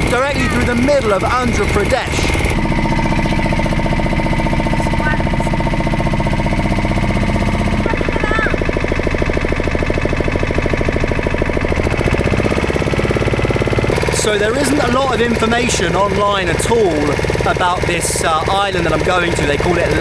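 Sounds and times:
boat motor pulsing: 0.0 - 20.0.

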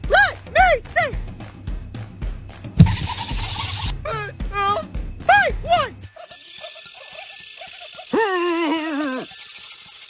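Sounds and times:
dog whining: 2.8 - 3.8
dog yipping: 2.8 - 3.9, 6.2 - 9.3.

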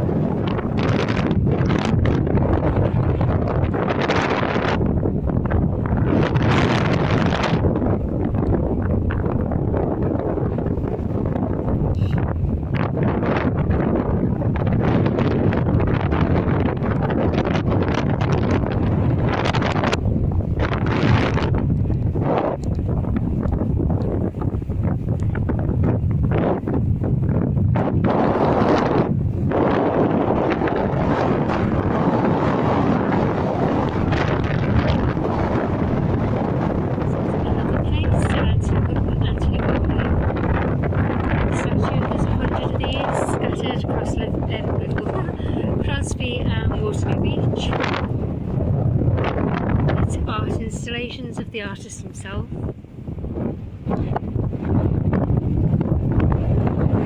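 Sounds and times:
wind buffeting microphone: 0.0 - 57.0.

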